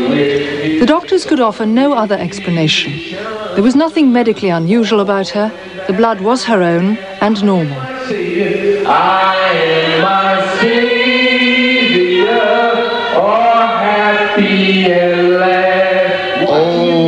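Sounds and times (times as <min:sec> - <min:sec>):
voices singing a hymn: 0:00.0 - 0:17.0.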